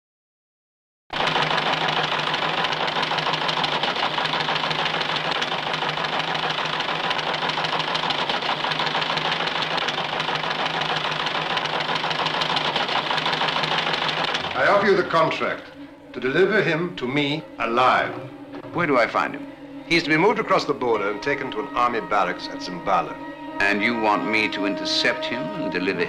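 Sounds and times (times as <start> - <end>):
teleprinter clatter: 1.2 - 14.6.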